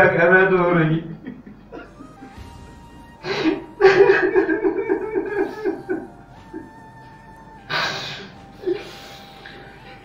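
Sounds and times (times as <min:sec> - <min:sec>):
man sobbing: 0:01.6 - 0:02.4, 0:03.2 - 0:07.0
held note of background music: 0:01.7 - 0:10.0.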